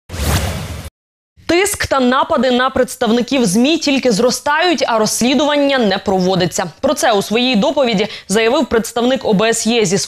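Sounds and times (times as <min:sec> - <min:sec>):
short whoosh sound effect: 0:00.1 - 0:00.9
woman speaking: 0:01.5 - 0:10.0.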